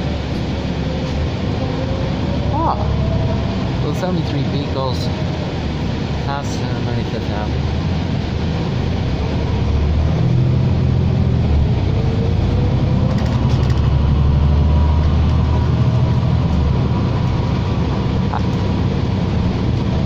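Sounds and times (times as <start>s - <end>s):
bus engine drone: 0.0s - 20.0s
road and tyre noise: 0.0s - 20.0s.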